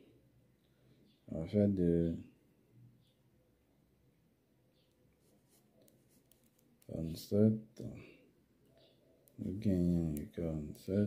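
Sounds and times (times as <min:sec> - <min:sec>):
man's voice: 0:09.4 - 0:11.0.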